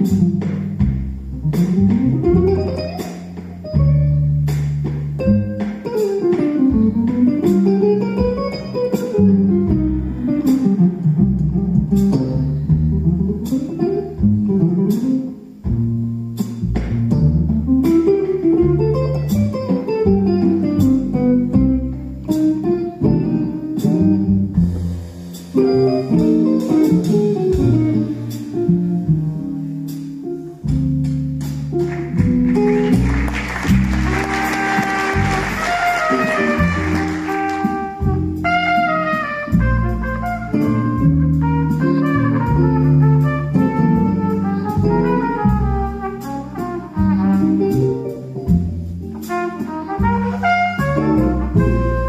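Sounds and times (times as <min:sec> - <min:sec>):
plucked upright bass: 0:00.0 - 0:52.0.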